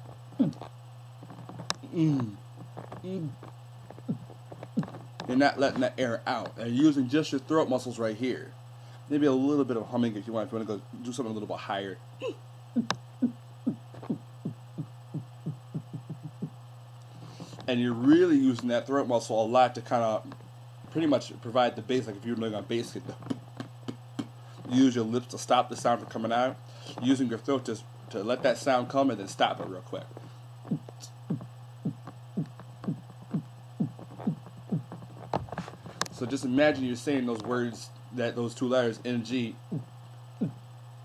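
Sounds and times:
low hum: 0.0s - 41.0s
beatbox bass kick: 0.4s - 0.7s, 1.8s - 2.4s, 4.0s - 5.8s, 12.8s - 16.6s, 23.1s - 24.4s, 30.6s - 36.6s, 39.7s - 40.6s.

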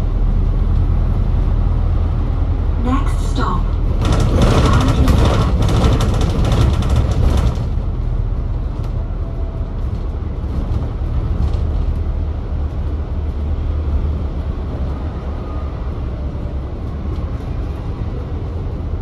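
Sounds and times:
bus engine rumble: 0.0s - 19.0s.

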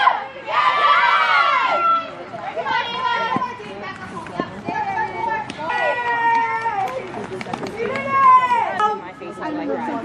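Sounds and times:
young voices shouting: 0.0s - 3.9s, 4.7s - 7.2s, 7.8s - 9.0s.

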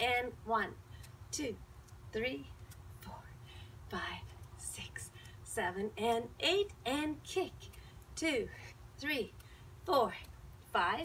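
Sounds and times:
woman whispering counts: 0.1s - 11.0s
woman counting loudly: 9.9s - 11.0s.

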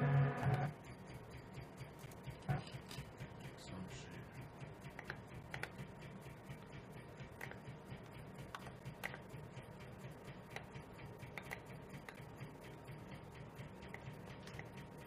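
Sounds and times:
electronic beat: 0.0s - 15.0s
faint steady hum: 0.0s - 15.0s
computer keyboard typing: 0.5s - 14.9s.

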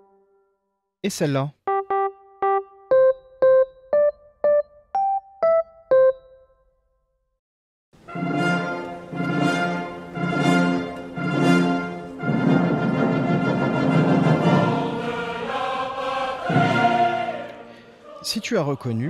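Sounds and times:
electric piano melody: 1.6s - 6.7s
choir-like recorded music: 8.0s - 19.0s.

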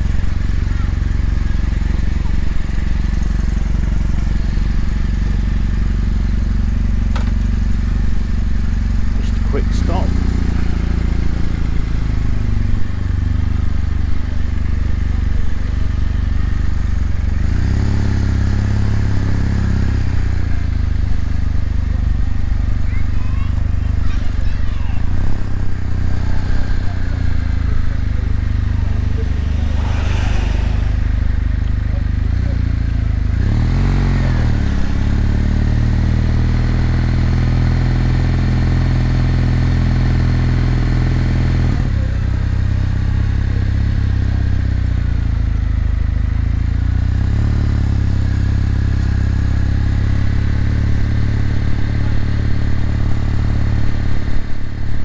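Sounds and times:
motorcycle engine revving: 0.0s - 22.8s, 25.0s - 55.0s.

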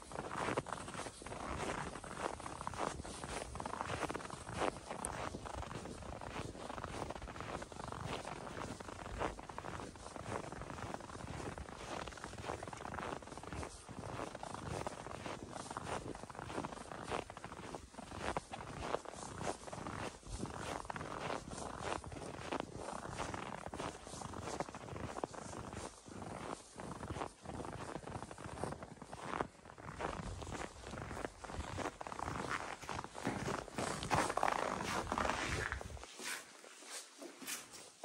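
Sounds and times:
footsteps in snow: 0.0s - 38.0s.

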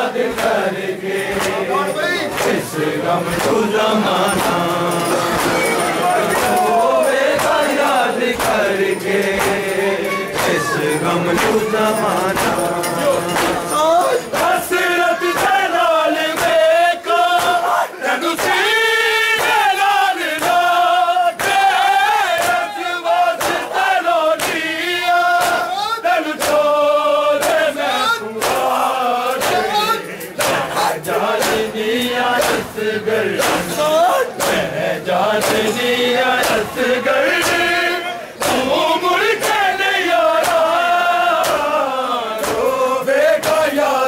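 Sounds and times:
men chanting in unison: 0.0s - 44.0s
hands slapping chests: 0.2s - 0.6s, 1.2s - 14.7s, 16.3s - 16.6s, 17.3s - 17.7s, 19.4s - 19.7s, 20.3s - 20.8s, 21.4s - 22.7s, 23.4s - 23.8s, 24.4s - 24.7s, 25.4s - 25.7s, 26.4s - 26.7s, 27.4s - 27.8s, 28.4s - 31.7s, 32.3s - 37.8s, 38.4s - 38.8s, 39.4s - 39.8s, 40.4s - 41.8s, 42.4s - 42.8s, 43.4s - 44.0s.

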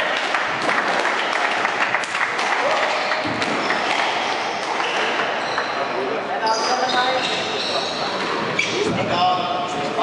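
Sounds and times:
shoes squeaking on wooden floor: 3.3s - 9.0s.

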